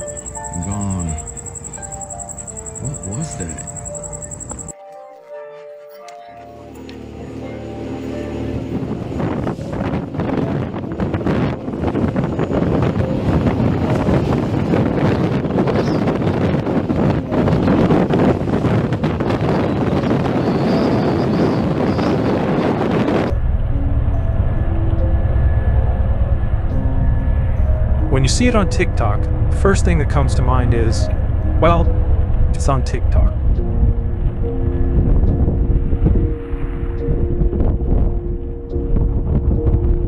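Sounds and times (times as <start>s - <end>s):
wind buffeting microphone: 8.7s - 25.1s, 25.8s - 40.0s
deep low rumble: 23.3s - 36.4s.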